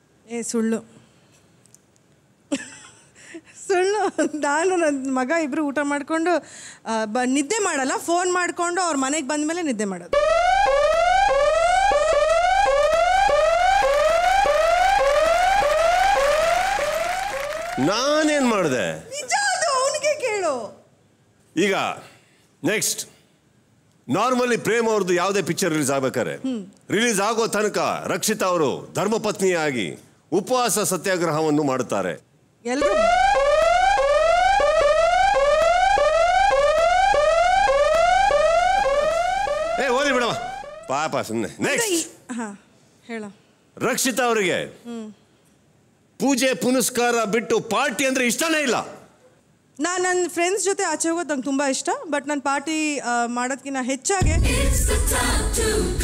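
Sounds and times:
electronic alarm tone rising and dropping: 0:10.2 - 0:18.0, 0:32.8 - 0:41.0.

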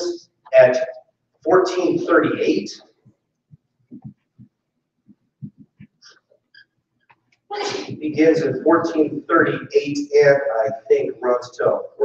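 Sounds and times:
man speaking: 0:00.0 - 0:03.0, 0:07.6 - 0:12.0.

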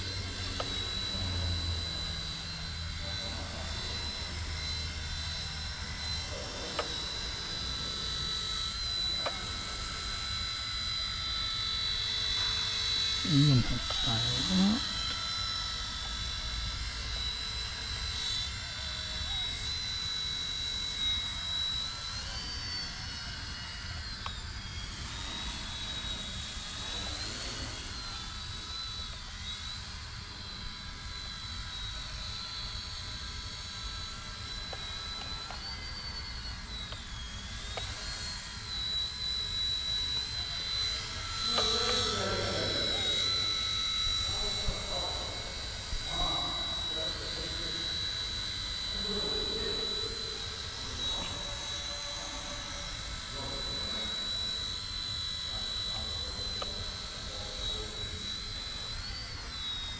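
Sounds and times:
toy helicopter rotor whine: 0:00.0 - 0:59.9.

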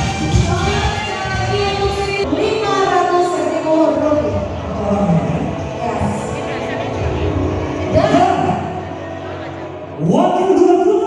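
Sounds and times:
music playing: 0:00.0 - 0:11.0
person speaking over public address: 0:00.3 - 0:11.0.

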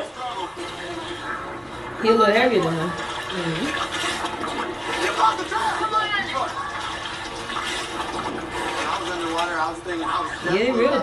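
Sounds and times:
water sloshing and splashing: 0:00.0 - 0:11.0
person speaking on tv: 0:04.9 - 0:07.2, 0:08.5 - 0:11.0.

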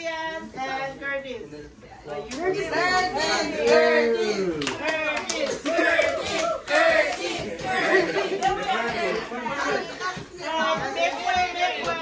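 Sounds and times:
group chatter: 0:00.0 - 0:12.0.

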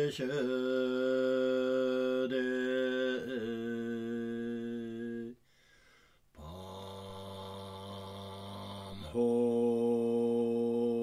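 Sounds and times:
person chanting mantra: 0:00.0 - 0:05.4, 0:06.4 - 0:11.0.

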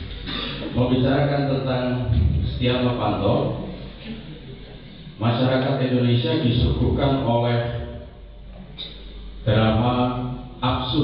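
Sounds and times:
man speaking in reverberant hall: 0:00.0 - 0:11.0.

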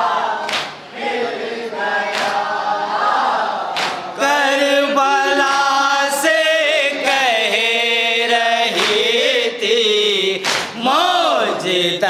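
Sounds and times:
men chanting in unison: 0:00.0 - 0:12.0
hands slapping chest: 0:00.4 - 0:00.8, 0:02.1 - 0:02.4, 0:03.7 - 0:04.0, 0:10.4 - 0:10.7.

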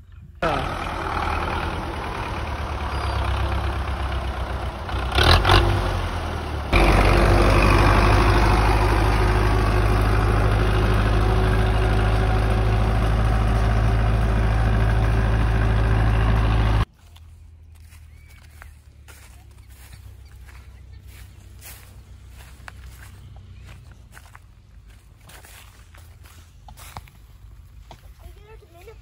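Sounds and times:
tractor diesel engine running: 0:00.0 - 0:29.0.

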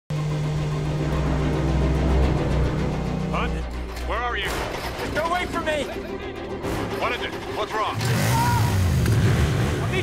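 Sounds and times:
film score music: 0:00.1 - 0:10.0.

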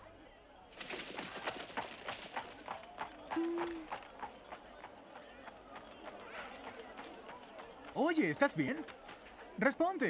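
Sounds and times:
horse hooves clopping: 0:00.8 - 0:09.5.

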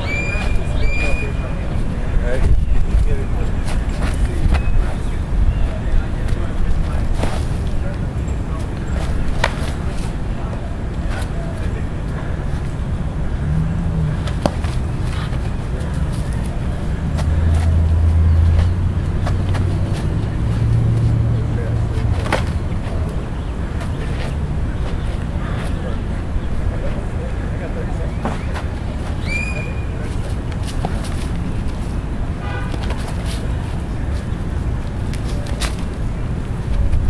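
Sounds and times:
wind rumble on microphone: 0:00.0 - 0:28.0, 0:33.1 - 0:37.0.

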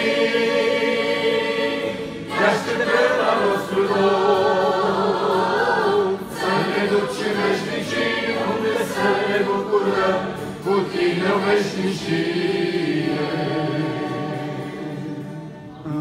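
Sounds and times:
women singing in harmony: 0:00.0 - 0:15.8.

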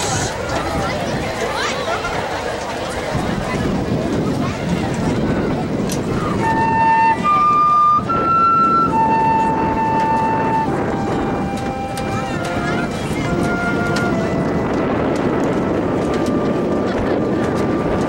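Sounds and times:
band instruments sustained notes: 0:00.0 - 0:18.0
outdoor crowd noise: 0:00.0 - 0:18.0
wind noise: 0:00.0 - 0:18.0
wind instrument slow melody: 0:05.2 - 0:18.0.

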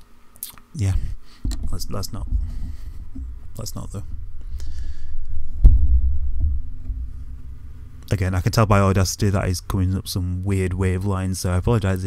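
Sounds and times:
mic stand handling rumble: 0:01.0 - 0:10.0
mic stand knocks: 0:01.4 - 0:09.2.

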